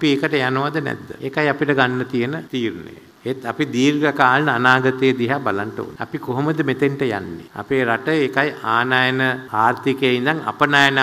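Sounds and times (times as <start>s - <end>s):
man giving a speech: 0.0s - 11.0s.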